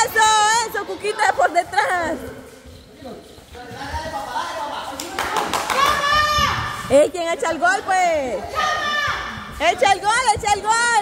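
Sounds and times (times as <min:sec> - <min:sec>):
people calling out and chattering: 0:00.0 - 0:11.0.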